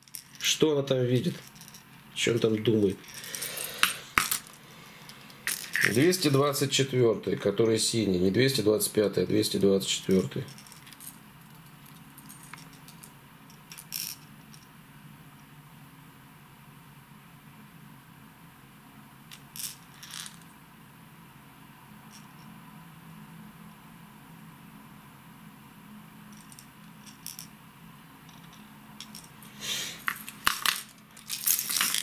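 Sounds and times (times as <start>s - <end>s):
faint low hum: 0.0s - 32.0s
plastic lures clicking and rattling: 30.0s - 32.0s.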